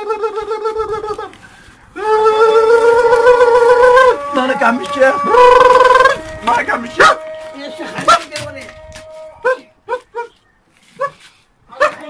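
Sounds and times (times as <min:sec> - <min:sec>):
dog barking in sharp yelps: 0:11.0 - 0:12.0.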